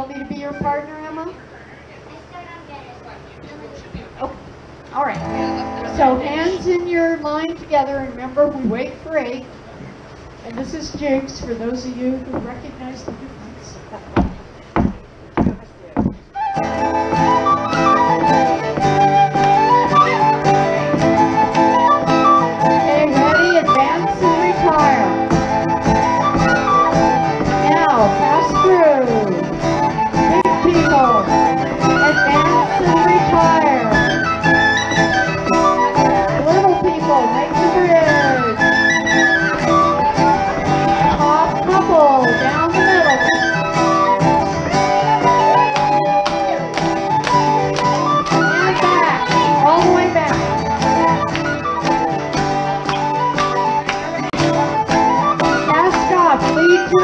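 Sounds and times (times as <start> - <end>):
lively jig music: 5.1 - 8.7, 14.0 - 57.0.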